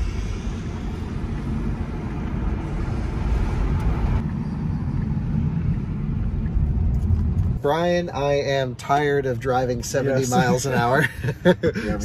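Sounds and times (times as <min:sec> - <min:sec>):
road and tyre noise in car: 0:00.0 - 0:12.0.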